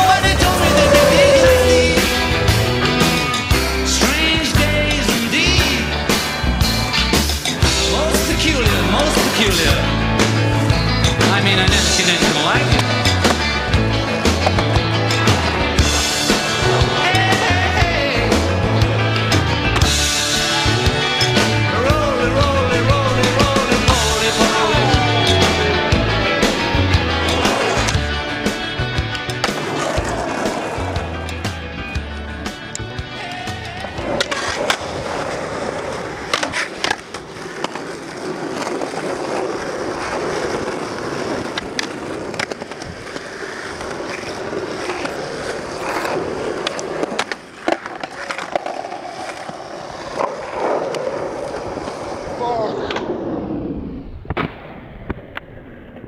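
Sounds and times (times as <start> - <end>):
rock song with steady beat: 0.0 - 34.0
skateboard clacks: 0.0 - 53.1
skateboard truck grinding on concrete: 0.0 - 53.6
skateboard wheels rolling on pavement: 0.0 - 56.0.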